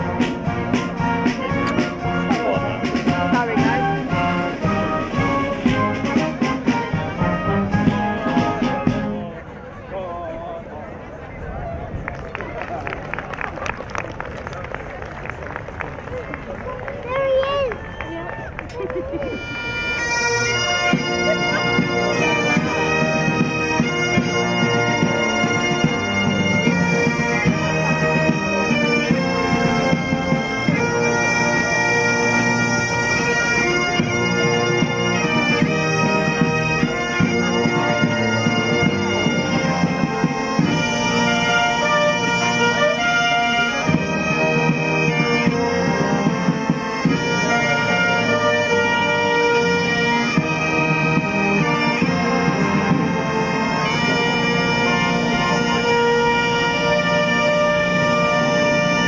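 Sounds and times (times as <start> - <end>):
bagpipes playing with drone: 0.0 - 9.4, 18.8 - 59.0
cornets playing: 0.0 - 9.4, 19.2 - 59.0
military band drums: 0.0 - 9.4, 19.3 - 59.0.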